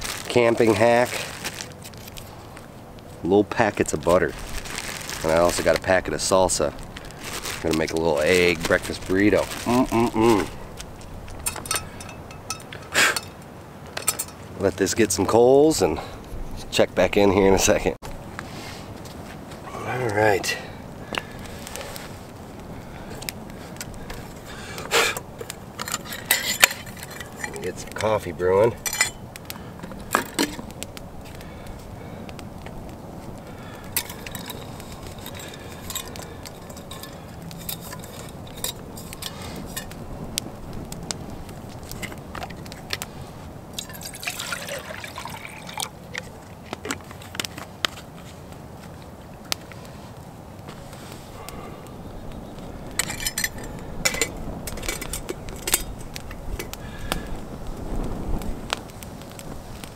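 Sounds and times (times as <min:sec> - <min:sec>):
metal cookware clinking: 0:11.5 - 0:13.4
water pouring into metal mug: 0:43.8 - 0:45.9.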